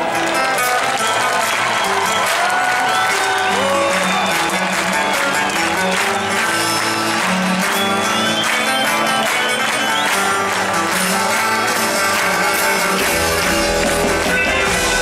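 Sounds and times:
audience applause: 0.0s - 15.0s.

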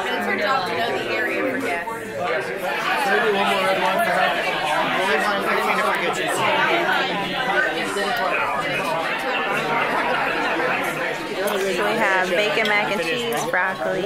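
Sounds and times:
chatter of many voices: 0.0s - 14.0s.

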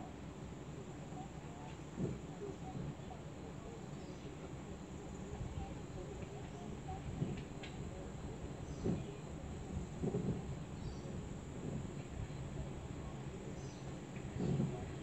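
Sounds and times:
wind rumbling on microphone: 6.9s - 13.1s.

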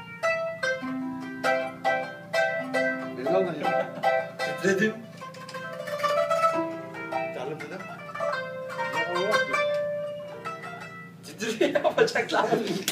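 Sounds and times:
plucked qanun melody: 0.0s - 12.9s.

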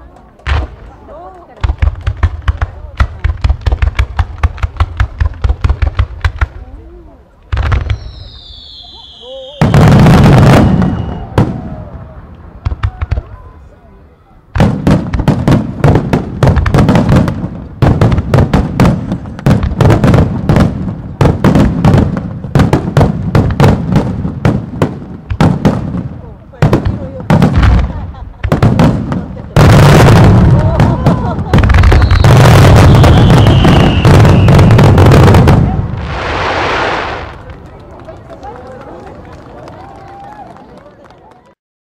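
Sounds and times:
fireworks bursting: 0.1s - 13.8s, 14.5s - 38.5s
faint voices: 6.4s - 7.6s, 8.2s - 14.6s, 37.2s - 41.6s.

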